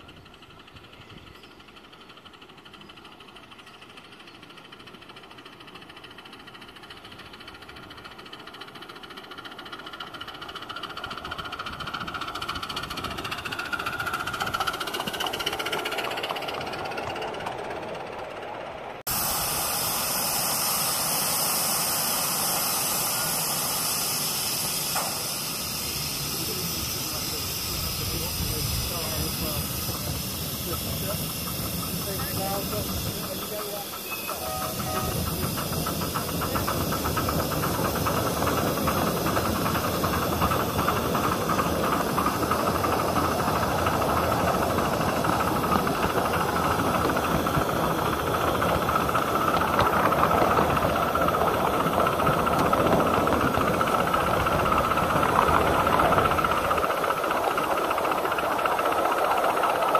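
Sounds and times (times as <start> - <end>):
steam hissing: 0.0 - 59.9
steam locomotive running: 0.0 - 59.9.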